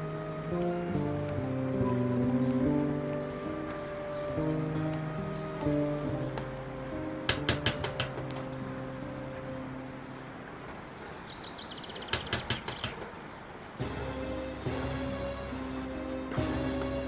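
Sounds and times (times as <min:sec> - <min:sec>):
background music: 0:00.0 - 0:10.7, 0:13.8 - 0:17.0.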